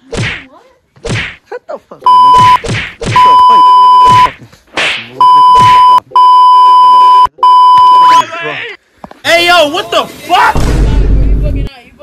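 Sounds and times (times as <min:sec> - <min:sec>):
loud one-tone censor beep: 0:02.1 - 0:02.6, 0:03.2 - 0:04.3, 0:05.2 - 0:08.2.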